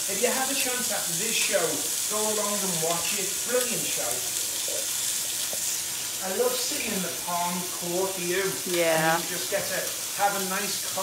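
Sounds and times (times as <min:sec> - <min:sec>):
meat sizzling in a hot pan: 0:00.0 - 0:11.0.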